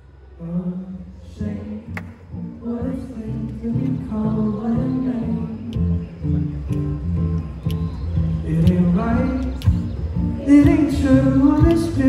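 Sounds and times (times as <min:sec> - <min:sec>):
sharp percussive clicks: 0:06.6 - 0:09.9.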